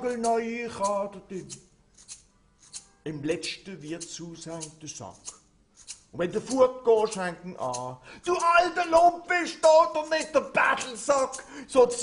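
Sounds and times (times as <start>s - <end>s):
man singing syllables: 0.0s - 1.7s, 6.2s - 12.0s.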